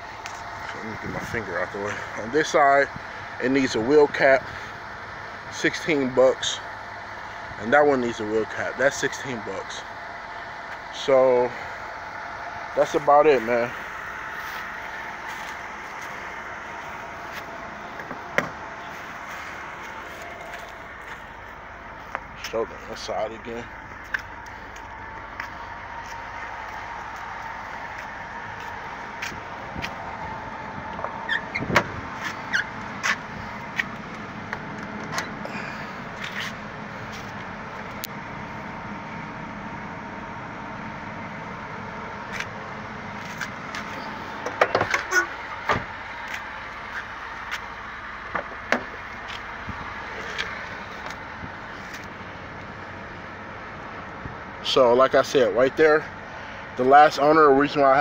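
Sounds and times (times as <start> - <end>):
car door clicks and knocks: 44.4 - 45.9.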